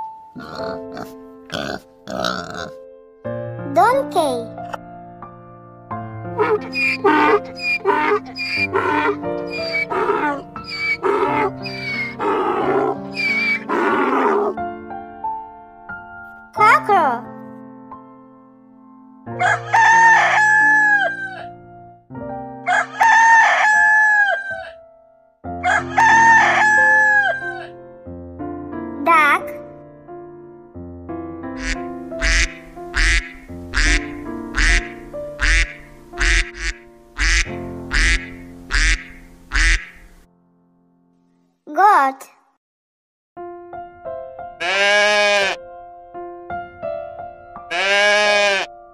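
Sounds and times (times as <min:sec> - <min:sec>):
background music: 0:00.0 - 0:41.9
donkey braying: 0:00.4 - 0:02.8, 0:06.4 - 0:14.6, 0:31.6 - 0:40.0, 0:44.6 - 0:45.6, 0:47.7 - 0:48.7
duck quacking: 0:06.4 - 0:12.3, 0:13.1 - 0:14.0, 0:31.6 - 0:40.1, 0:44.6 - 0:45.6, 0:47.7 - 0:48.7.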